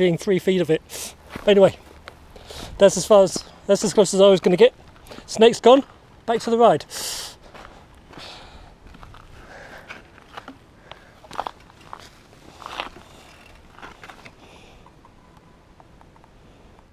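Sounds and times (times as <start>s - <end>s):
footsteps on dirt trail: 0.9s - 6.6s, 7.4s - 14.6s.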